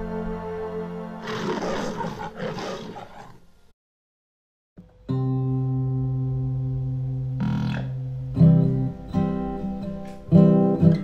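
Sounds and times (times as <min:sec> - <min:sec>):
low sustained music tones: 0:00.0 - 0:01.6, 0:04.8 - 0:11.0
animal-like roar: 0:01.2 - 0:03.4.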